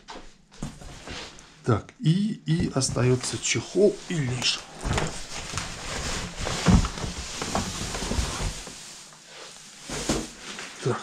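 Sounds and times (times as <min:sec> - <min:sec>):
cardboard and plastic rustling: 0:02.8 - 0:11.0.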